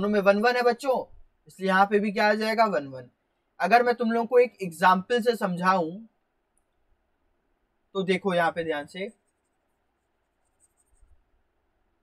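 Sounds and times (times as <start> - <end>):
person speaking: 0.0 - 6.2, 7.9 - 9.5.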